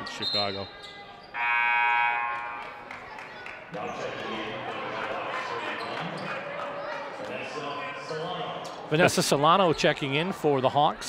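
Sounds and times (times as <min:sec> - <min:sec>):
scoreboard horn buzz: 0:01.4 - 0:03.0.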